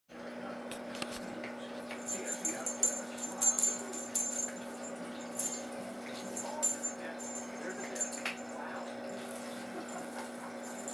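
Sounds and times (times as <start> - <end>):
steady low hum: 0.2 - 10.9
tinsel toy jingling and rustling: 1.9 - 10.9.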